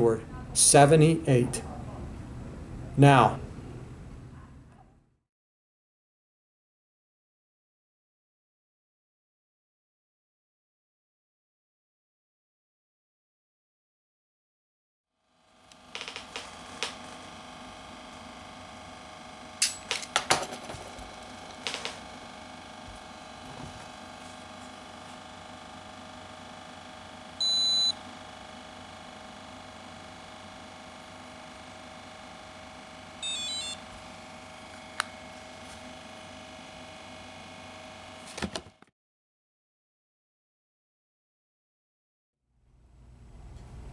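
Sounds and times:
loud high beep: 0:27.4 - 0:28.0, 0:33.2 - 0:33.8
warbling beeps: 0:33.2 - 0:33.8
low room hum: 0:42.6 - 0:43.9.

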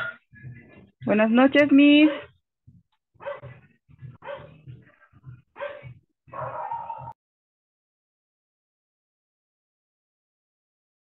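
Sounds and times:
dog barking: 0:02.0 - 0:02.4, 0:03.2 - 0:03.6, 0:04.2 - 0:04.6, 0:05.6 - 0:07.2.

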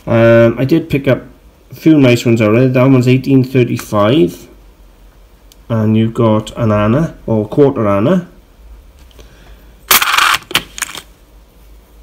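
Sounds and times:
coins clinking in a cardboard box: 0:09.9 - 0:11.0.

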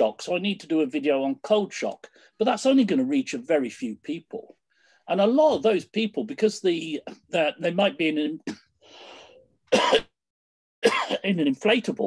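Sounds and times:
man breathing in: 0:08.8 - 0:09.5
man clearing throat: 0:09.7 - 0:10.1, 0:10.8 - 0:11.3.

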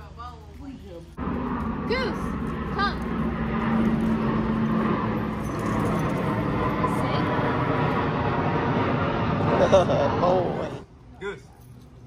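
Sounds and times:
vehicle engine humming: 0:01.0 - 0:10.9.

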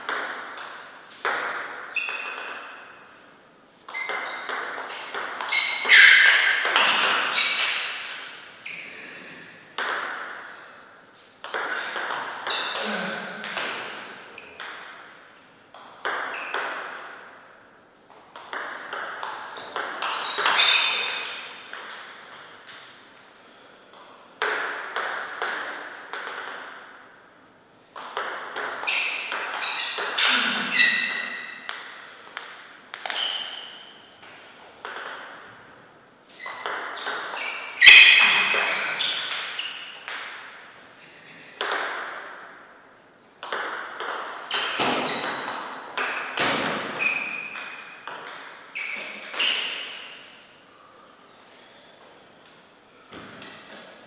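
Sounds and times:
ball bouncing on table: 0:00.0 - 0:02.7, 0:03.9 - 0:08.2, 0:09.8 - 0:10.4, 0:11.4 - 0:15.0, 0:15.7 - 0:17.0, 0:18.3 - 0:22.9, 0:23.9 - 0:26.8, 0:28.0 - 0:33.6, 0:34.8 - 0:35.4, 0:36.4 - 0:40.4, 0:43.4 - 0:50.0
table tennis ball on bats: 0:00.0 - 0:23.2, 0:23.9 - 0:40.8, 0:41.6 - 0:50.5, 0:52.0 - 0:54.0.

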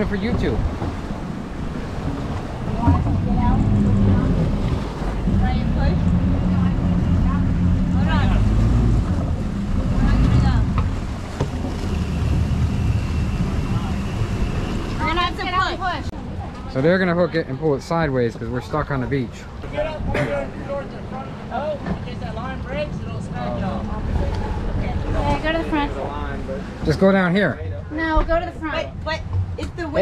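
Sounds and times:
outboard motors churning water: 0:00.0 - 0:30.0.

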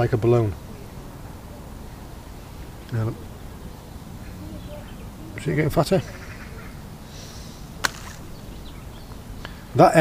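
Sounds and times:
low outdoor rumble: 0:00.0 - 0:10.0
sharp click: 0:07.8 - 0:08.2.

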